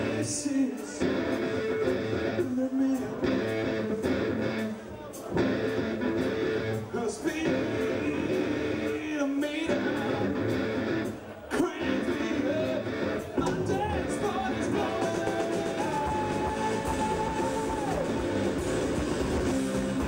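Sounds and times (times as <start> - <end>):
bass guitar: 0.0 - 20.0
heavy electric guitar riffs: 0.0 - 20.0
steady drum beat: 11.6 - 20.0.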